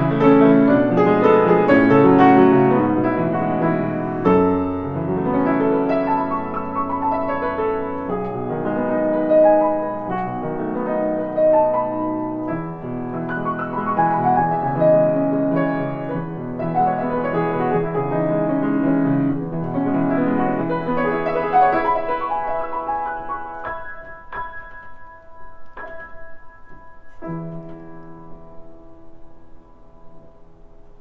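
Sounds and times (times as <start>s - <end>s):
solo grand piano: 0.0s - 31.0s.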